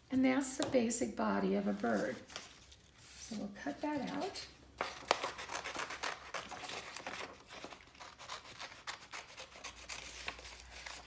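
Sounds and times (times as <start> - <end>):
paper scraping and rustling: 1.6 - 11.0
scissors snipping paper: 4.0 - 11.0.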